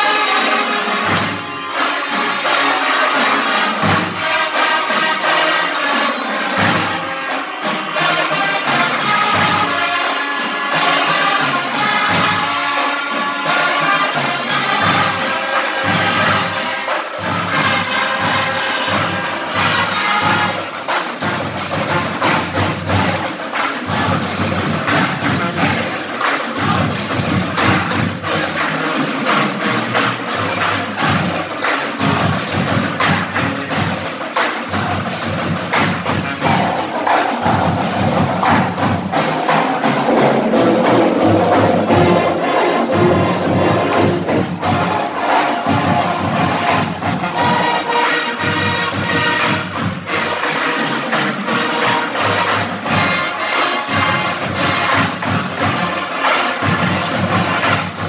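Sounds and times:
marching band playing: 0.0 - 58.0.

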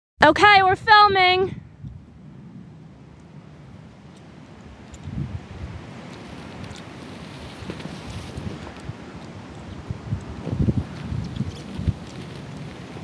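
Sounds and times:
wind buffeting microphone: 0.5 - 13.0
faint scattered crackles: 0.9 - 13.0.

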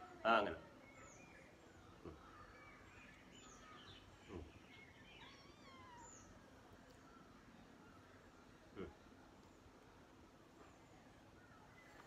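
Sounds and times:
faint bird chirps: 0.0 - 9.6, 10.6 - 12.0.

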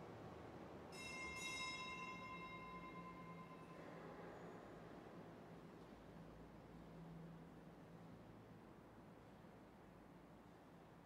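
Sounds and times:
small bell ringing: 0.9 - 3.7.

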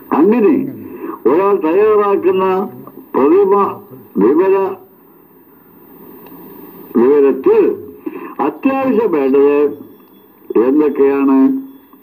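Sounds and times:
man talking: 0.1 - 4.9, 6.9 - 9.9, 10.5 - 11.7.

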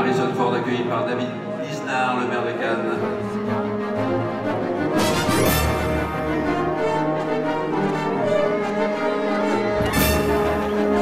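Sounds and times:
orchestral bowed strings: 0.0 - 11.0.

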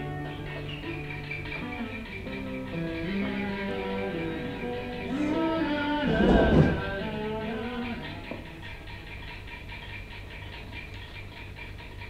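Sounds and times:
cartoon guitar music: 0.0 - 9.4
soft fast pulsing: 0.0 - 12.0.

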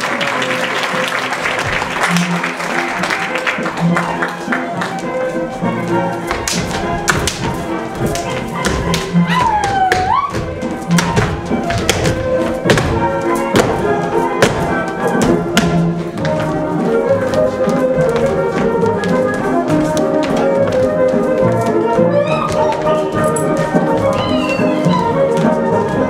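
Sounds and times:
folk dance music: 0.0 - 26.0
shoes stamping on stage floor: 1.5 - 26.0
gliding whoop: 9.3 - 10.4.

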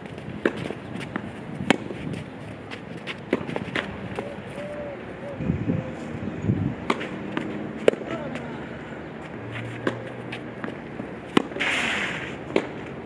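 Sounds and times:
racket strikes and ball bounces: 0.0 - 4.8, 6.8 - 13.0.

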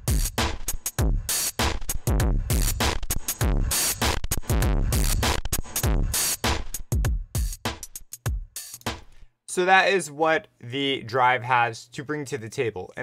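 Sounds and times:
electronic drum loop: 0.0 - 9.2.

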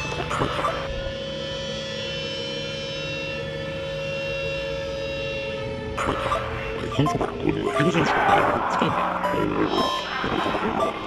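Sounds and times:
busy choppy music: 0.0 - 1.0, 6.0 - 11.0
layered drone music: 0.0 - 11.0.

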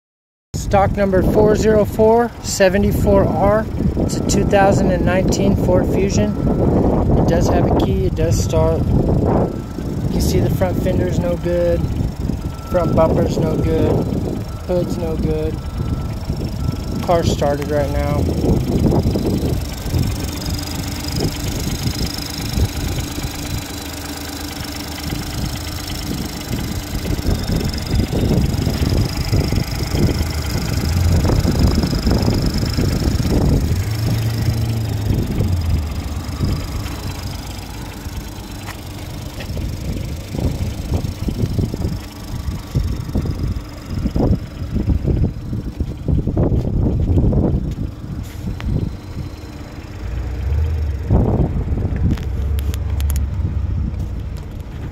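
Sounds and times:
car engine idling: 0.6 - 54.9
irregular low rumbling: 0.6 - 54.9.

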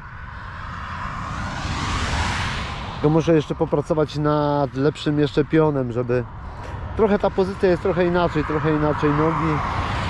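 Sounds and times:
vehicle passing: 0.0 - 10.0
wind rumble on microphone: 0.0 - 10.0.

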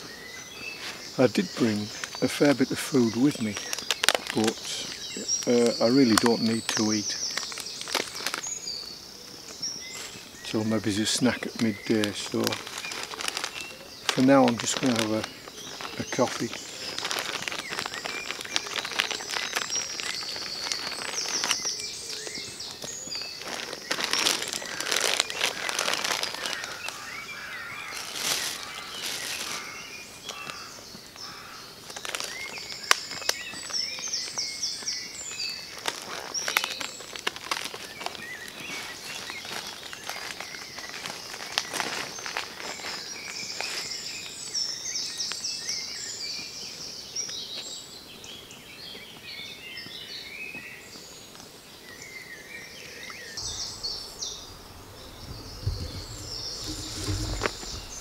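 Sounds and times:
outdoor ambience: 0.0 - 58.0
plastic bags crinkling: 1.5 - 8.8, 11.0 - 30.7, 31.9 - 34.5, 35.2 - 43.7, 53.4 - 58.0.

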